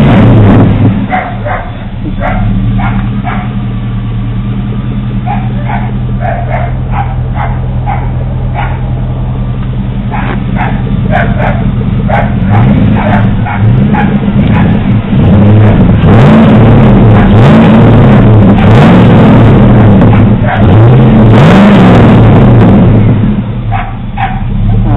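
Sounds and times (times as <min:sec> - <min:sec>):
pickup engine idling and revving: 0:00.0 - 0:24.9
dog barking: 0:01.1 - 0:03.6, 0:05.2 - 0:09.0, 0:10.1 - 0:14.8, 0:20.1 - 0:20.8, 0:23.7 - 0:24.9.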